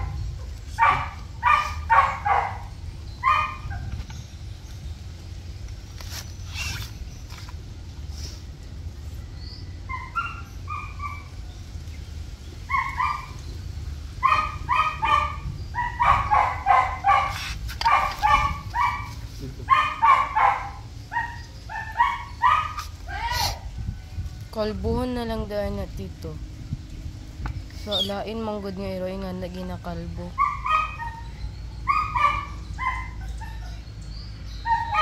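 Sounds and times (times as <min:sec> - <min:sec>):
small dog yelping: 0:00.0 - 0:04.0, 0:09.9 - 0:11.4, 0:12.6 - 0:13.4, 0:14.2 - 0:23.7, 0:30.3 - 0:33.9, 0:34.5 - 0:35.0.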